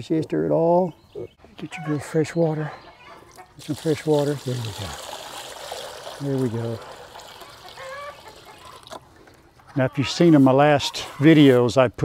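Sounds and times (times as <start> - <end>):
water trickling into pan: 3.6 - 9.2
chicken call: 7.4 - 8.9.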